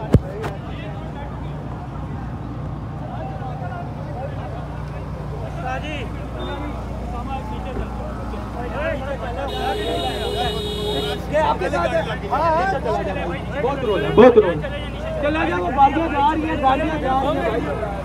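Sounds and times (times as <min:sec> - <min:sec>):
crowd voices: 0:00.0 - 0:18.0
truck engine rumbling: 0:00.0 - 0:18.0.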